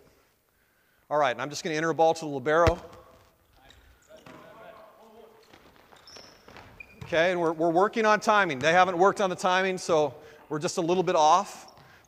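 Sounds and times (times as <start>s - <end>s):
volleyball contacts: 2.5s - 12.0s
shoe squeaks on court: 3.4s - 7.4s.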